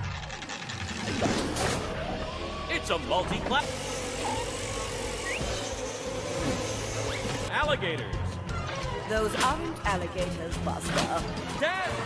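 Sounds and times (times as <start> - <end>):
buzzing drone: 0.0 - 7.5
rising whistle: 5.2 - 5.6.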